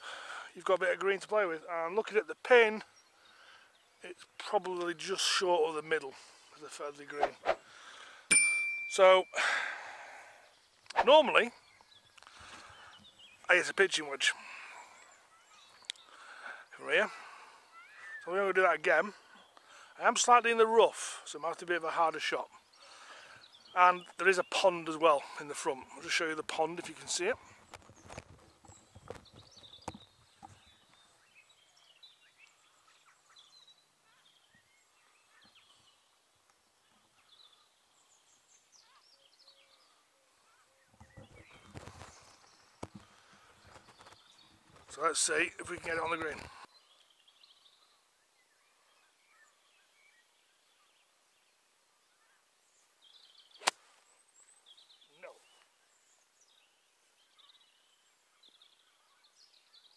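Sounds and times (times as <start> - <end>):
faint birdsong: 0.0 - 59.9
golf club striking ball: 53.6 - 53.8.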